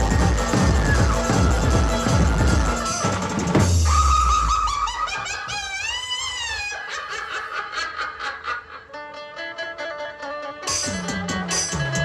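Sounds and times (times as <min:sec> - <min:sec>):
electronic keyboard lead line: 0:00.0 - 0:03.7.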